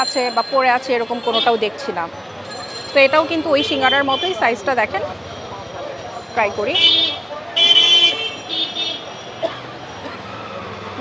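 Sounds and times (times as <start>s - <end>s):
crowd noise: 0.0s - 11.0s
steady traffic: 0.0s - 11.0s
vehicle horns honking: 1.0s - 1.8s, 3.0s - 4.8s, 6.5s - 10.2s.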